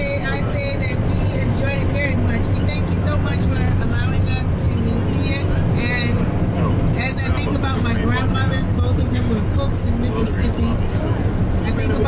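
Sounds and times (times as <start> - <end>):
bus engine and tyres rumbling: 0.0 - 12.0
people's voices: 0.0 - 12.0.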